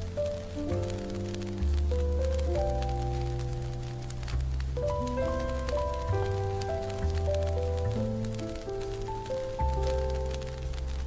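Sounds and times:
faint small ticks: 0.0s - 11.0s
slow jazz piano: 0.0s - 11.0s.

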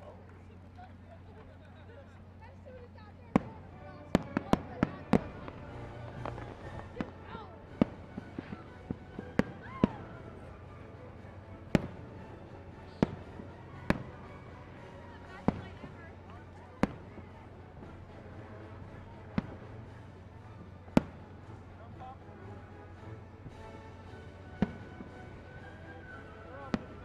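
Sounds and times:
fireworks bursting with sharp bangs: 3.3s - 22.4s, 23.4s - 27.0s.

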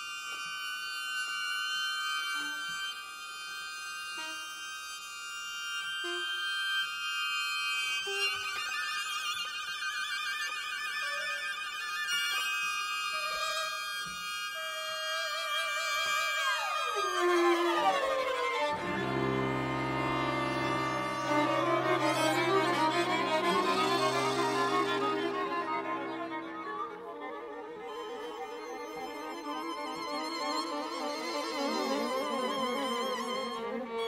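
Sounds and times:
bamboo wind instrument high notes: 0.0s - 34.0s
cello: 0.0s - 34.0s
violin: 0.0s - 34.0s.

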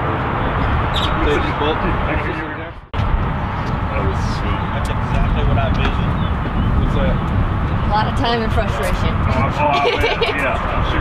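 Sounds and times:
low rumble: 0.0s - 11.0s
people talking: 1.0s - 2.8s, 3.9s - 6.2s, 7.9s - 11.0s.

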